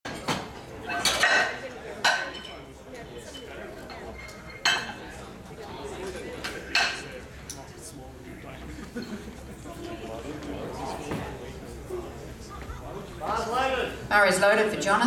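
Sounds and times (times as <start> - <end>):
crowd chatter: 0.1 - 15.0.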